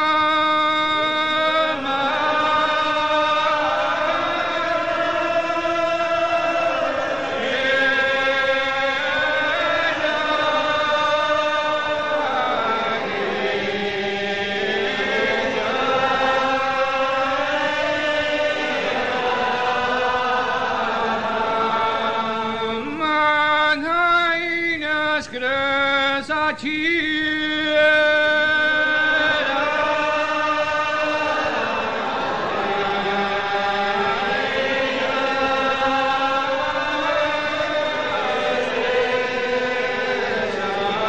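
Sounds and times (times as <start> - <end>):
congregation singing unaccompanied: 0.0 - 41.0.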